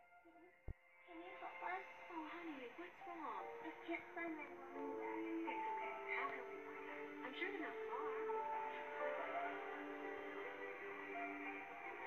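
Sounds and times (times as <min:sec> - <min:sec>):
soft film score: 0:00.0 - 0:12.0.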